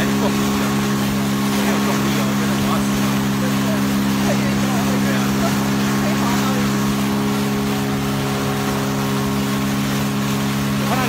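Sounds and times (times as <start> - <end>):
outboard motor droning: 0.0 - 11.0.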